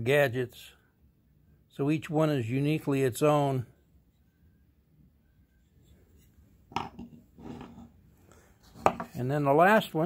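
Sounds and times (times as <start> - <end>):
soft handling rubs: 3.6 - 4.6, 5.2 - 9.5.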